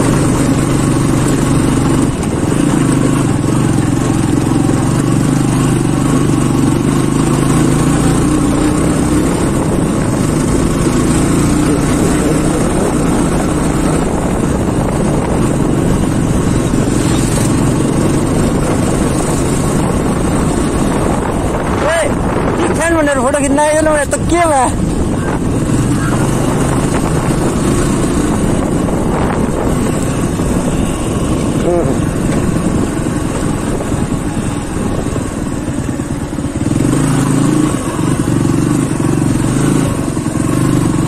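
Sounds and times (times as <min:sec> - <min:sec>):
motorcycle engine running: 0:00.0 - 0:41.0
wind noise: 0:00.0 - 0:41.0.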